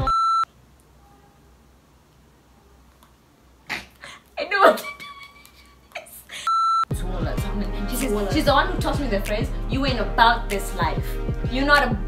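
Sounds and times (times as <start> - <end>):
electronic censor bleep: 0.0 - 0.5.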